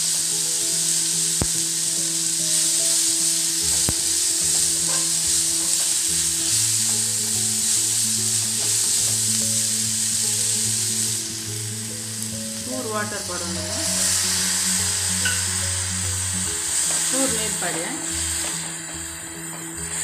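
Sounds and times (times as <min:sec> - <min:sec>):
vegetables sizzling in oil: 0:00.0 - 0:20.0.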